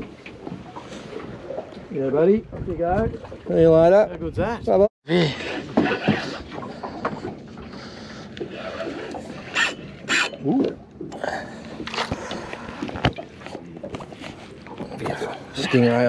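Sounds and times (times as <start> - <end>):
water noise around boat: 0.0 - 16.0
wind: 0.0 - 16.0.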